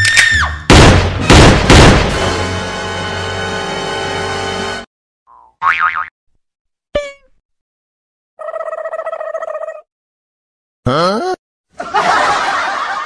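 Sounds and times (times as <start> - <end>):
sharp falling twang: 0.7 - 2.4
cartoon wobbling boing: 5.3 - 6.1.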